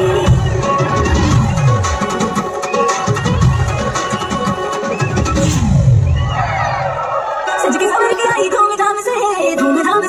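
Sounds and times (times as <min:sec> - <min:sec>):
film song music: 0:00.0 - 0:08.4.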